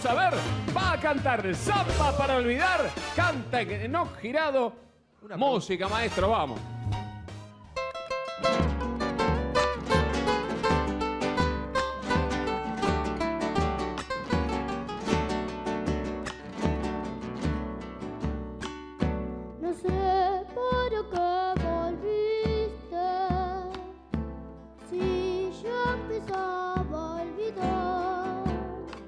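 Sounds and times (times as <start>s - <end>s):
acoustic guitars plucking: 0.0s - 4.2s, 5.9s - 29.0s
boy singing: 19.6s - 24.0s, 24.8s - 29.0s.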